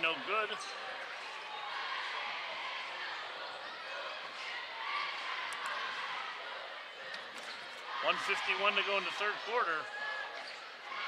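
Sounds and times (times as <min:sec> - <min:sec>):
murmur of spectators: 0:00.0 - 0:11.0.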